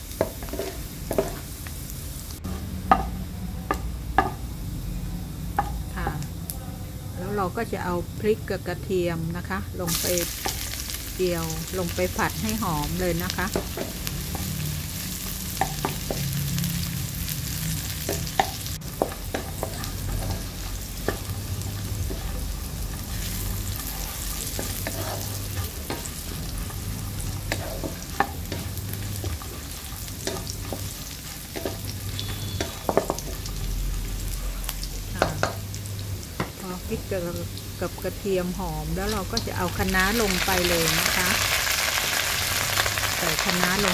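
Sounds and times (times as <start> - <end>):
food sizzling in hot oil: 0.0 - 6.6, 7.2 - 43.9
spatula knocking and scraping pan: 0.2 - 1.4, 13.4 - 14.5, 15.6 - 16.3, 18.0 - 33.6.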